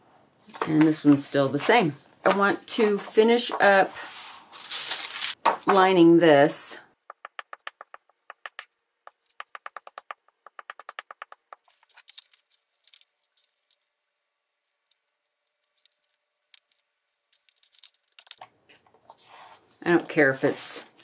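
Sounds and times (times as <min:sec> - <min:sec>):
glue stick scratching on paper: 0:07.0 - 0:12.6, 0:15.0 - 0:18.4
paper rustling and tapping: 0:07.1 - 0:12.4.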